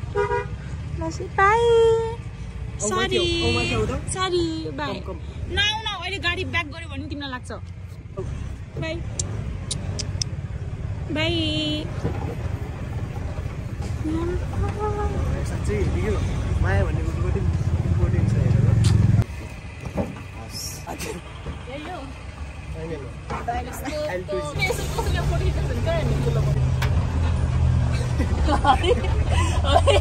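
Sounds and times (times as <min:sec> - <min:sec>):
motor vehicle rumble: 0:00.0 - 0:30.0.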